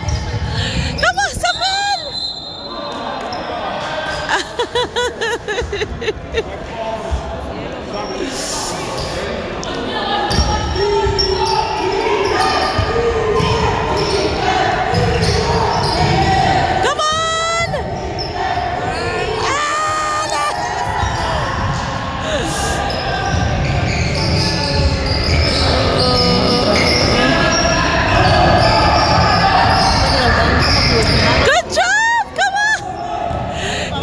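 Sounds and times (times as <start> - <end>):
shoe squeal: 0.0 - 4.2, 10.2 - 16.7, 17.8 - 31.5
players' voices: 0.0 - 34.0.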